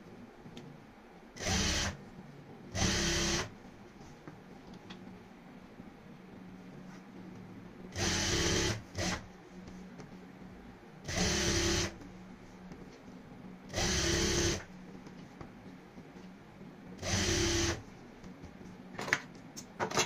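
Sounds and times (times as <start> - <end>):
steady low hum: 0.0 - 19.8.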